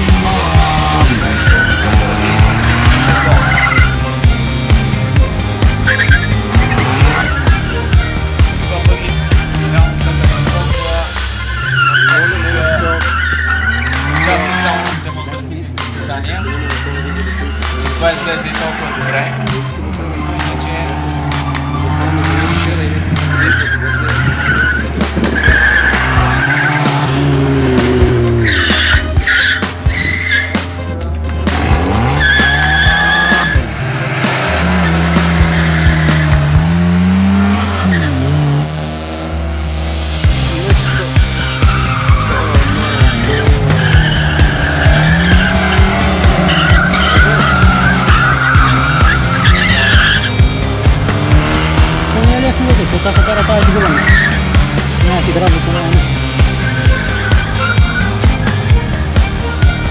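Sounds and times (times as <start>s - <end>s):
tyres squealing: 0.0s - 4.3s, 5.6s - 8.3s, 9.2s - 38.7s, 40.2s - 59.9s
car engine revving: 0.0s - 59.9s
music: 0.0s - 59.9s.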